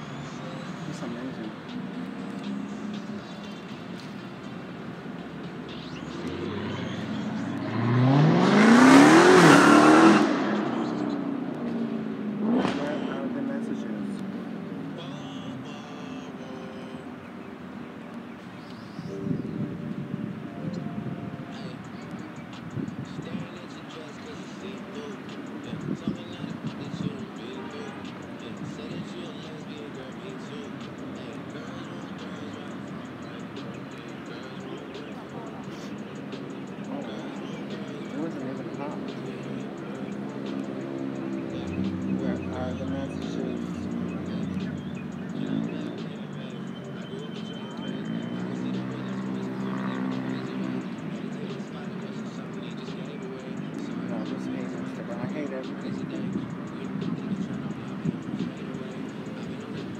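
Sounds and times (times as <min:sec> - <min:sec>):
vehicle accelerating past: 0:06.0 - 0:13.4.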